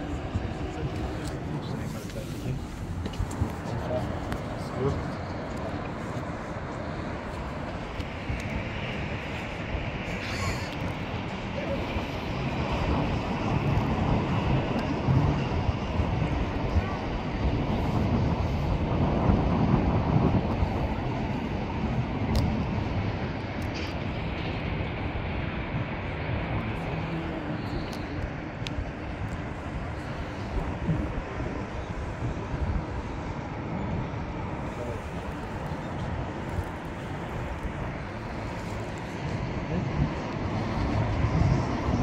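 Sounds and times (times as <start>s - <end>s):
faint voices: 0.0s - 18.9s, 26.4s - 42.0s
low outdoor rumbling: 0.0s - 42.0s.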